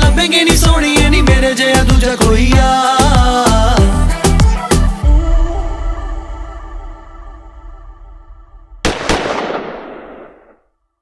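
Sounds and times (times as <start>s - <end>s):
handgun shot echoing: 8.9s - 10.6s.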